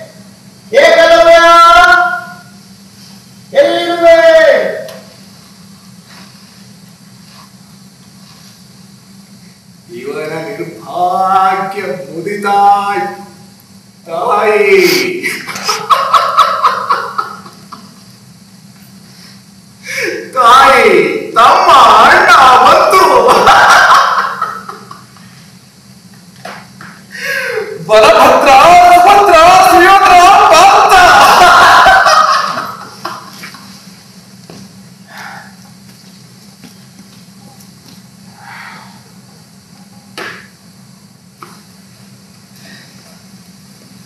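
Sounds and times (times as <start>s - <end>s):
low steady hum: 0.0s - 44.0s
actor's loud declamation: 0.7s - 2.3s, 3.6s - 4.9s, 20.2s - 23.4s, 27.8s - 31.8s
man's loud drawn-out call: 0.7s - 2.5s, 3.5s - 5.0s, 27.6s - 32.4s
loud speech: 20.3s - 24.3s, 27.8s - 32.8s.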